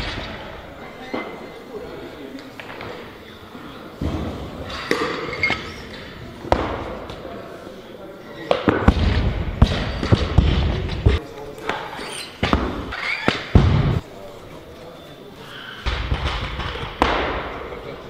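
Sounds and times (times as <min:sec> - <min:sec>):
hubbub of voices: 0:00.0 - 0:18.0.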